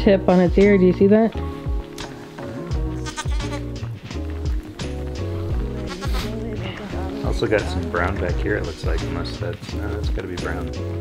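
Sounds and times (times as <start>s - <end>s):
music with bass beat: 0.0s - 11.0s
sheep bleating: 2.7s - 3.9s, 5.5s - 8.2s.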